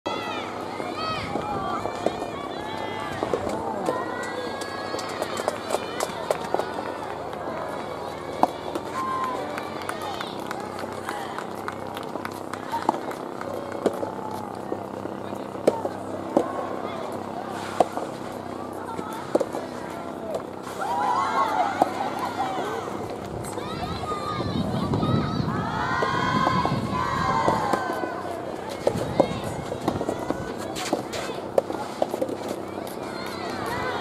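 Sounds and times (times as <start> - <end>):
voices calling out and cheering: 0.0 - 34.0
rackets striking tennis balls: 1.2 - 23.7, 25.9 - 33.9.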